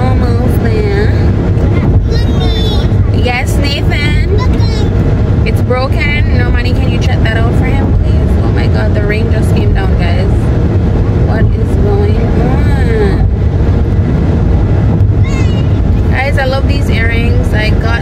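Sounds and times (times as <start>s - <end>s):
unclear voices: 0.0s - 10.4s, 11.2s - 13.4s, 15.2s - 18.0s
road and wind rumble in car: 0.0s - 18.0s.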